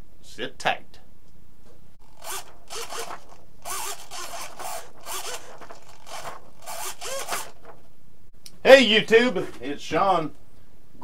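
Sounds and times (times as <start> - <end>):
servos whirring: 2.0 - 7.8.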